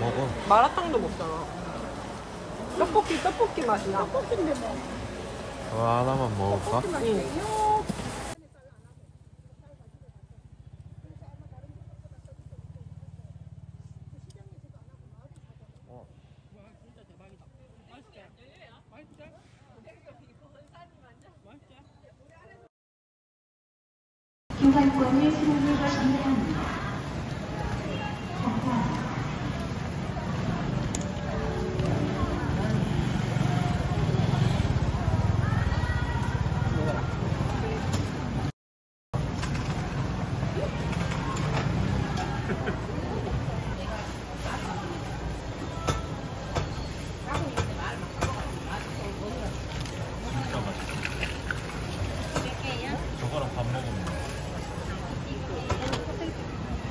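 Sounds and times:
shoppers chattering: 0.0 - 22.7, 24.5 - 38.5, 39.2 - 56.9.

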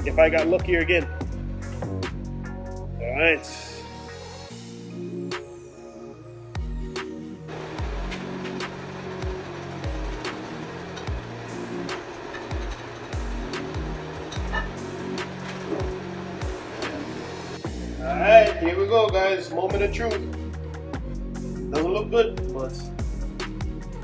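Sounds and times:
ticking percussion: 7.5 - 17.6.

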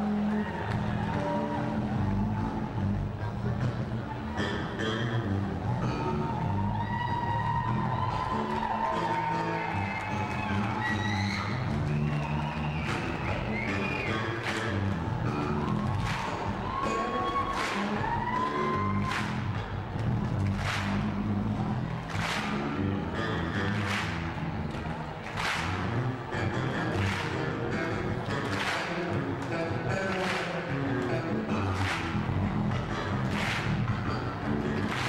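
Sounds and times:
live band playing amplified music: 22.5 - 35.0
sliding lead guitar line: 22.5 - 35.0.

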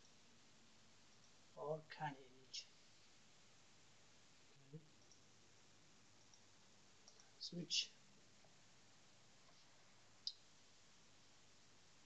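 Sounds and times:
person speaking: 1.6 - 2.8, 7.2 - 8.0
computer mouse clicks: 5.0 - 5.2, 6.2 - 7.4.

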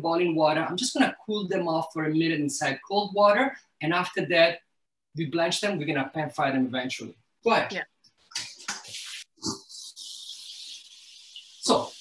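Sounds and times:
steady hiss of boiling water: 10.0 - 12.0.

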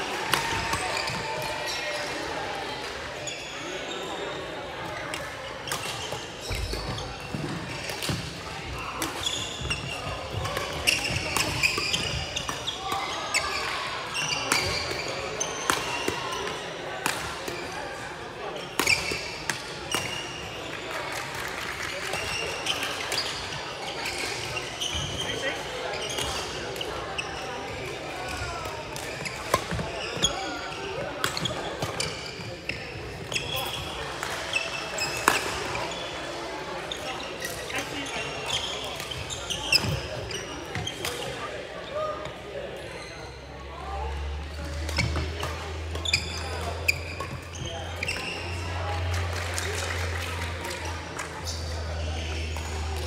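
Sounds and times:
players' voices: 0.0 - 53.0
shoe squeaks on court floor: 3.2 - 4.4, 5.6 - 16.6, 18.6 - 20.4, 22.1 - 42.1, 42.9 - 43.5, 44.8 - 48.6.

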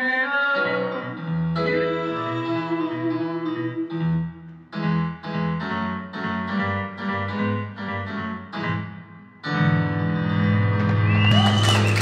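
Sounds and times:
piano chords on keyboard: 0.6 - 11.1.

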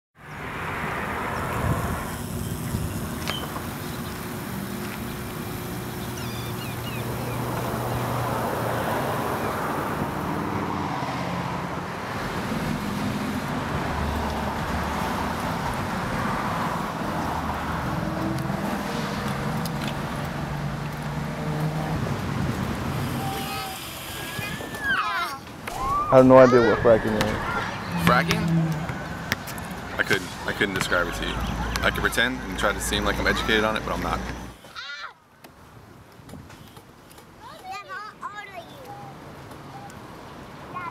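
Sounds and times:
cars passing: 0.2 - 34.6
road noise: 0.2 - 40.9.

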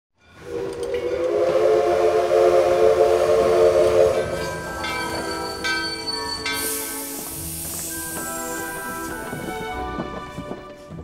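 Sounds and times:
steam locomotive whistle: 0.3 - 9.7
music: 3.1 - 11.0.

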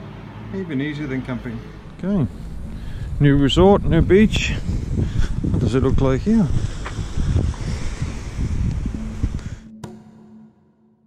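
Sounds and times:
held low music note: 1.6 - 11.0
wind buffeting microphone: 1.8 - 9.7.

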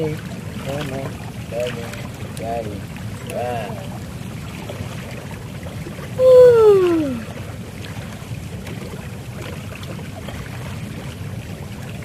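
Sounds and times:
hot tub jets bubbling: 0.0 - 12.0.

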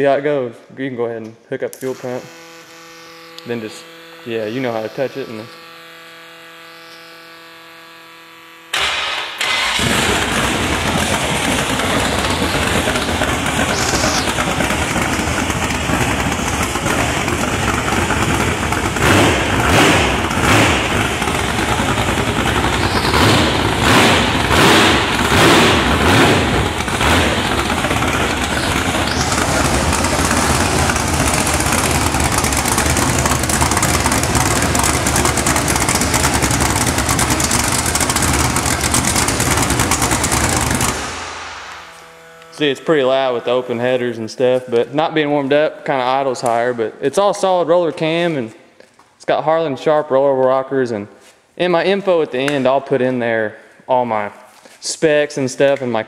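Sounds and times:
loud engine starting and idling: 8.7 - 42.5
engine revving: 8.7 - 42.9.

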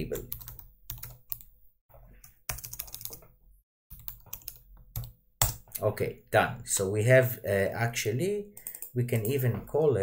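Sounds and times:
typing on computer keyboard: 0.1 - 1.5, 2.2 - 3.2, 3.9 - 5.7, 8.6 - 9.4.

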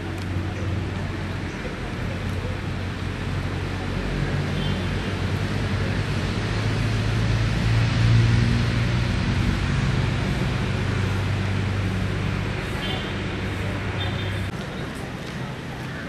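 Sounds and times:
outdoor noise: 0.0 - 16.0
vehicle engine hum: 0.0 - 16.0.

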